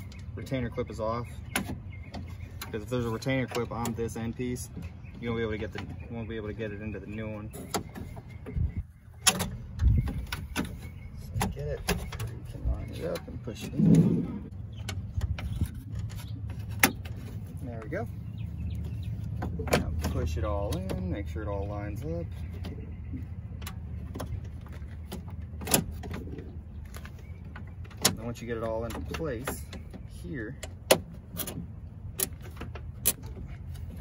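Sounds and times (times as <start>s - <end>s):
clicks and knocks of door latch: 9.2s - 10.8s, 25.1s - 26.3s.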